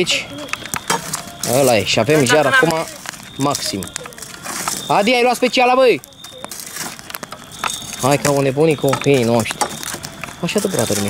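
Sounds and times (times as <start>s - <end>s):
burning logs popping: 0.0s - 11.0s
wood fire crackling: 0.0s - 11.0s.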